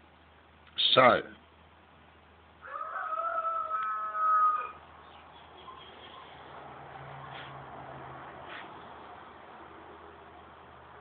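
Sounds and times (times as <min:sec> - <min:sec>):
drawn-out animal call: 0:02.6 - 0:06.6.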